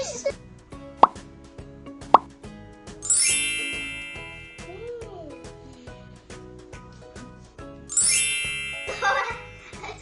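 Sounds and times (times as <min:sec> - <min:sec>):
background music with steady beat: 0:00.0 - 0:10.0
cartoon plop pops: 0:01.0 - 0:01.2, 0:02.0 - 0:02.4.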